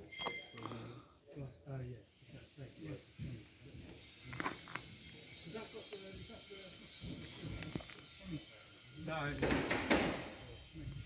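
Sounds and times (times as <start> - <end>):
steady high hiss: 1.7 - 11.0.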